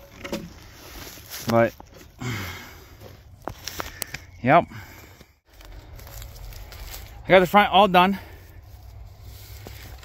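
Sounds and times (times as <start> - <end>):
footsteps on pine needles: 0.4 - 2.2, 3.0 - 10.0.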